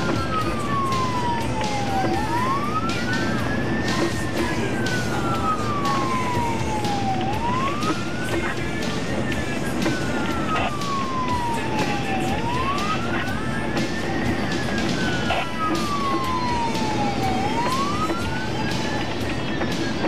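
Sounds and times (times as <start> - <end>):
emergency siren wailing: 0.0 - 20.0
road noise: 0.0 - 20.0.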